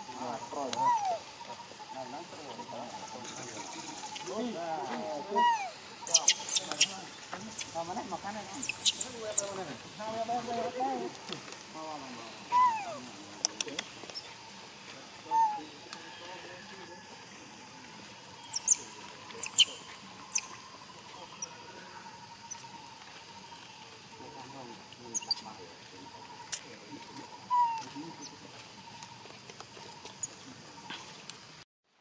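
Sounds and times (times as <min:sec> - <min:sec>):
faint animal squeaks: 0:00.1 - 0:04.4, 0:05.1 - 0:07.8, 0:08.5 - 0:09.6, 0:12.4 - 0:13.1, 0:15.2 - 0:16.6, 0:18.4 - 0:22.8, 0:25.1 - 0:25.6, 0:27.2 - 0:29.0
high squeaks and chirps: 0:05.3 - 0:09.6, 0:18.4 - 0:21.6, 0:25.1 - 0:25.6.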